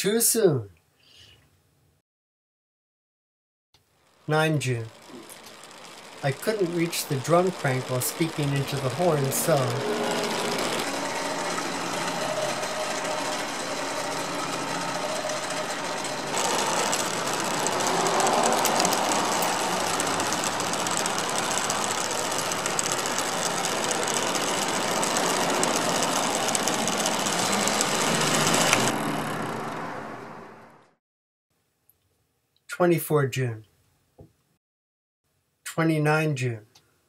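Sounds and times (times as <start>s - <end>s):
electric motor whirring and grinding: 4.2s - 30.9s.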